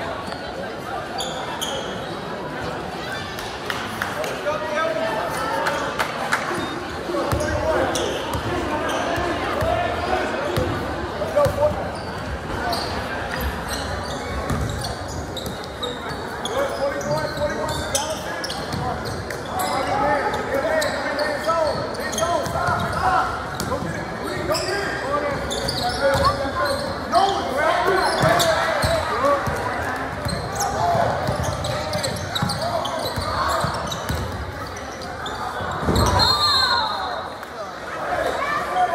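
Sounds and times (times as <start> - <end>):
crowd voices: 0.0 - 38.9.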